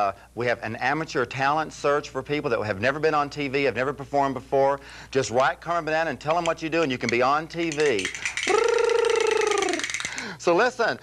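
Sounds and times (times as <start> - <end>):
person singing falsetto ooh: 8.5 - 10.0.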